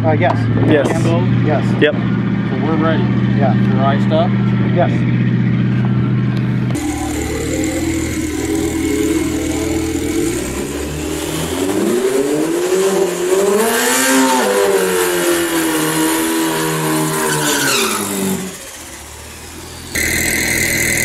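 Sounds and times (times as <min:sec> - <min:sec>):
racing engine revving: 0:00.0 - 0:21.0
tyres spinning: 0:05.2 - 0:12.7.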